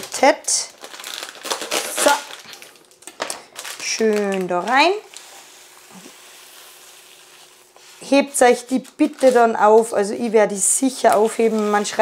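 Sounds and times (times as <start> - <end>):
lentils rustling: 0.0 - 12.0.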